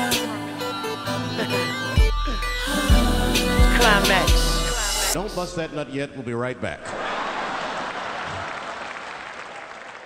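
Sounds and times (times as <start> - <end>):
studio audience applause: 6.9 - 10.0.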